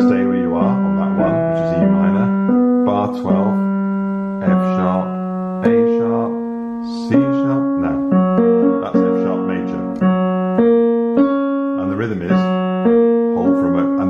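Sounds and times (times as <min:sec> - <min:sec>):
digital piano broken chords: 0:00.0 - 0:14.0.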